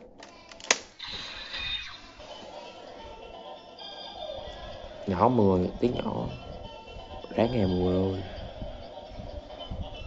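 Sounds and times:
toy electronic music: 1.5s - 10.0s.

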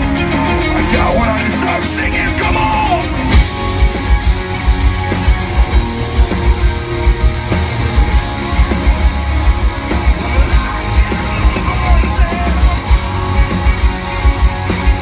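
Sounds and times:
metal band playing live: 0.0s - 15.0s.

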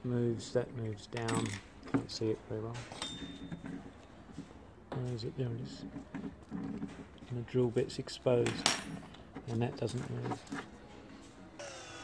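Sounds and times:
small metallic clink: 2.9s - 3.6s.

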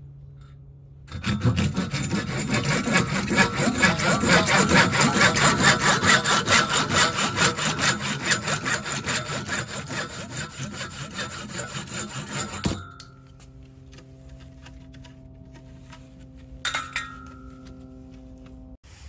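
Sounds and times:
hand saw cutting plastic pipe: 1.1s - 17.7s.

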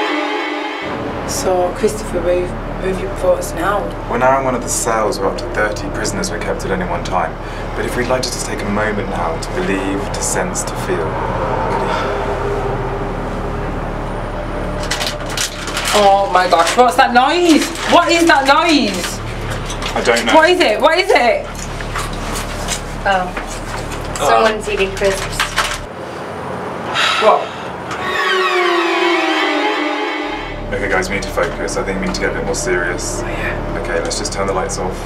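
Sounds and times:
eerie music sting gliding down: 0.0s - 20.8s, 27.6s - 35.0s.

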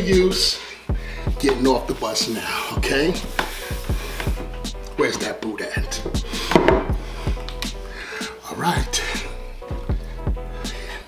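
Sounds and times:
hip hop beat: 0.0s - 11.0s.

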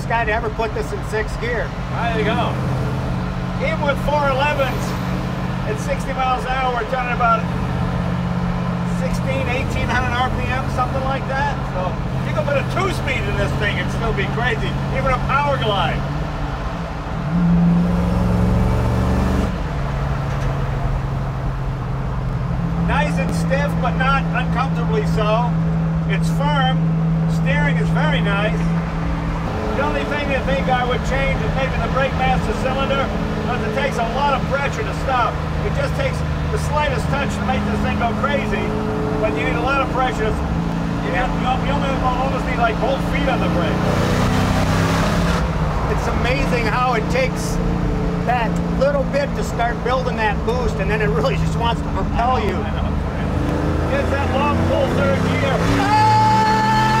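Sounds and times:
car engine cruising: 0.0s - 57.0s
tyre and road noise: 0.0s - 57.0s.

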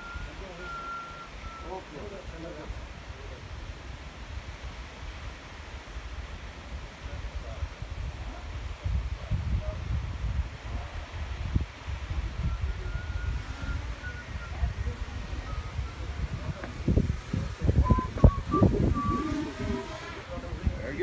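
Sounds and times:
steady outdoor hiss: 0.0s - 21.0s
wind buffeting microphone: 2.7s - 21.0s.

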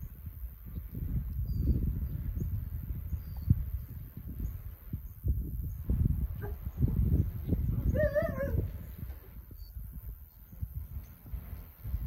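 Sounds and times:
dog whining: 7.9s - 8.7s.

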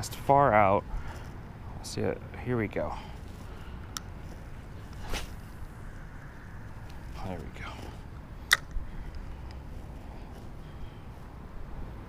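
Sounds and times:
fishing rod cast swish: 4.9s - 5.5s.

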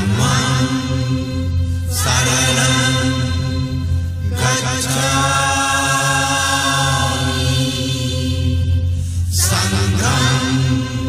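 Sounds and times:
person chanting in long notes: 0.0s - 11.0s
steady low drone: 0.0s - 11.0s.

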